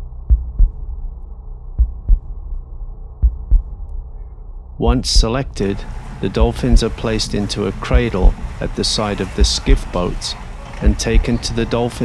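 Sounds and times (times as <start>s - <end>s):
heartbeat thumps: 0.0s - 1.1s, 1.8s - 2.6s, 3.2s - 4.0s, 4.8s - 5.4s, 6.4s - 7.0s, 7.9s - 8.5s, 9.4s - 9.9s, 10.8s - 11.4s
steady low hum: 0.0s - 10.2s.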